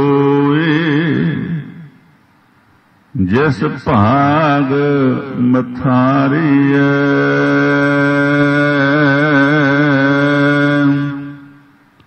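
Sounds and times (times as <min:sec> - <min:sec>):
devotional singing voice: 0:00.0 - 0:02.0, 0:03.2 - 0:11.7.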